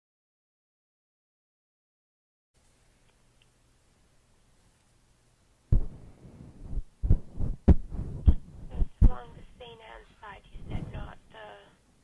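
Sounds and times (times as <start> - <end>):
dull heavy thumps: 5.7 - 9.2
voice through telephone line: 8.7 - 11.8.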